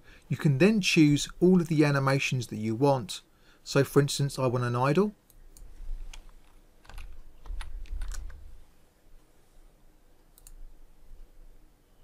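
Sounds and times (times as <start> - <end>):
keyboard keystroke clicks: 6.8 - 8.4.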